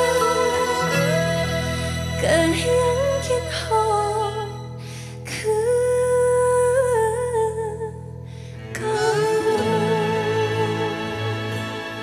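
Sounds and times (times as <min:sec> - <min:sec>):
soft backing music: 0:00.0 - 0:12.0.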